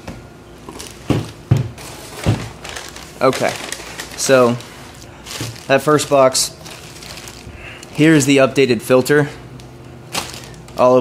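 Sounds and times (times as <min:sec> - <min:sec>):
packing paper rustling: 0:00.7 - 0:08.5, 0:10.1 - 0:11.0
dull thumps on a table: 0:01.1 - 0:02.5.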